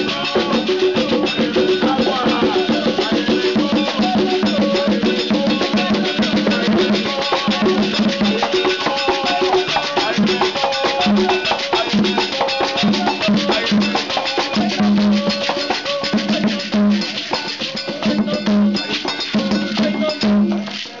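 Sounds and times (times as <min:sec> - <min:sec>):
drums: 0:00.0 - 0:20.7
bell: 0:00.0 - 0:21.0.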